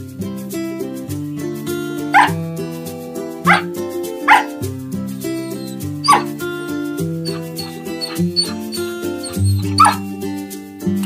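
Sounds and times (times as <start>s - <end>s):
light guitar music: 0.0s - 11.0s
dog barking: 2.1s - 2.4s, 3.4s - 3.7s, 4.3s - 4.6s, 5.4s - 10.0s.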